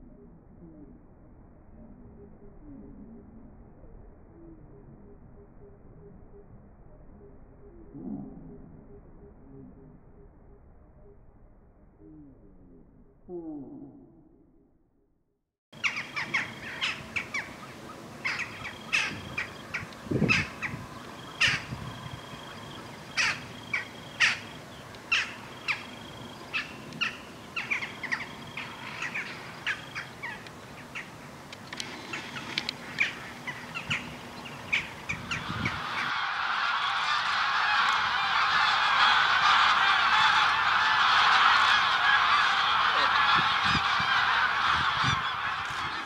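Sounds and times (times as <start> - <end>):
flock of birds chattering: 15.8 - 46.0.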